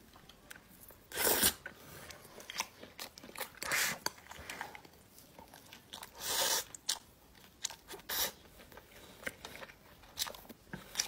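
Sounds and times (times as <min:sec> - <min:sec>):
person chewing food: 0:00.2 - 0:11.0.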